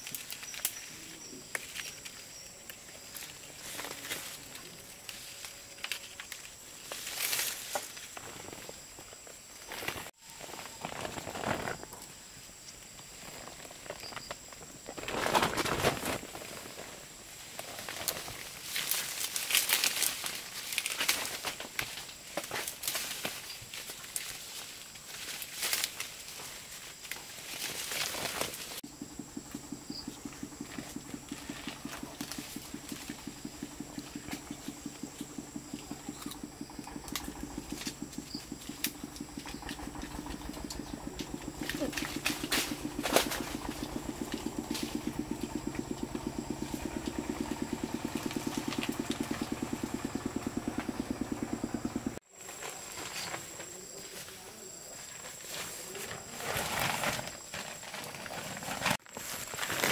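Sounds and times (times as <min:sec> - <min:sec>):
leaves and branches rustling: 0:00.0 - 0:59.9
rapid rhythmic pulsing: 0:28.8 - 0:52.2
low hum: 0:28.9 - 0:52.2.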